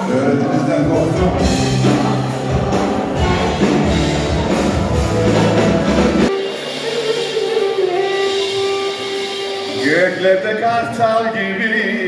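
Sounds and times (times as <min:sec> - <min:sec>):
live band with drums and bass: 0:00.0 - 0:11.6
clarinet holding long note: 0:03.2 - 0:10.2.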